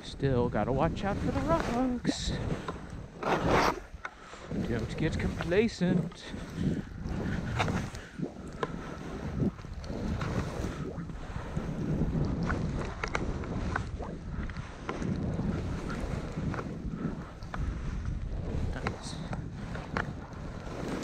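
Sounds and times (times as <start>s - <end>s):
wind rushing over microphone: 0.0s - 21.0s
skis hissing through snow: 3.2s - 6.7s, 12.7s - 17.4s, 18.6s - 21.0s.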